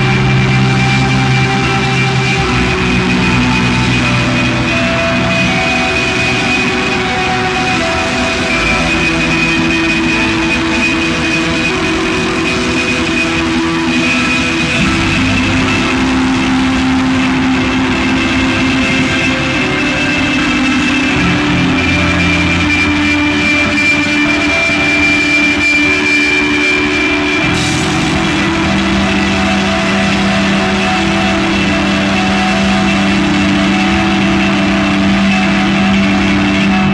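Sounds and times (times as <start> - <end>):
bass guitar: 0.0 - 36.9
distorted electric guitars droning: 0.0 - 36.9.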